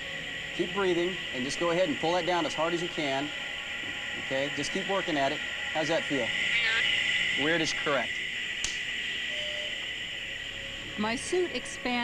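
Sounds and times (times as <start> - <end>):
steady hiss: 0.0 - 12.0
sharp click: 8.6 - 8.8.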